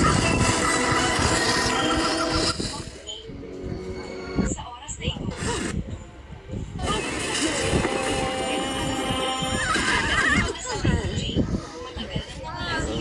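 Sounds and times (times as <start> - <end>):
cartoon music: 0.0 - 2.8.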